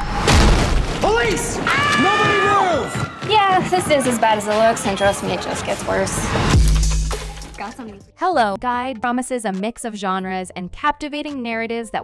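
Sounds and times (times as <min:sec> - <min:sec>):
deep boom: 0:00.0 - 0:01.7
music: 0:02.7 - 0:12.0.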